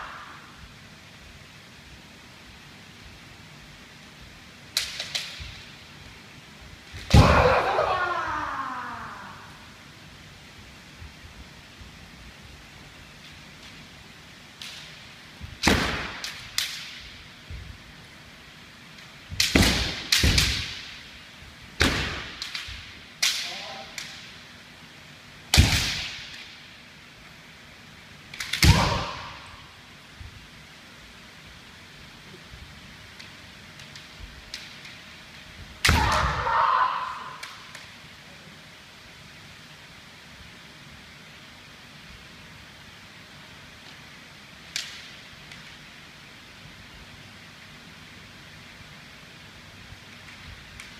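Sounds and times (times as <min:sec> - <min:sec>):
person shouting: 0:07.2 - 0:09.6, 0:35.9 - 0:37.4
bamboo swords striking armour: 0:28.6 - 0:29.3, 0:35.8 - 0:36.4.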